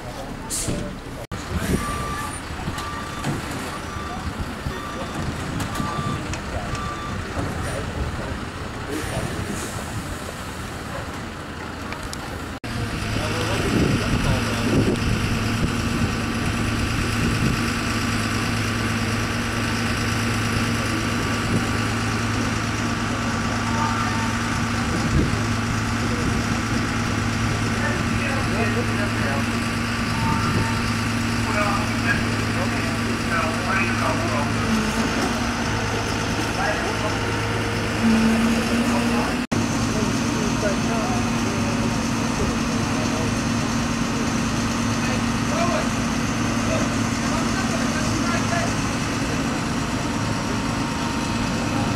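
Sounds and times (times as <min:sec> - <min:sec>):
voices in background: 0:00.0 - 0:10.1, 0:12.2 - 0:15.8, 0:20.5 - 0:51.9
truck diesel engine running: 0:00.0 - 0:51.9.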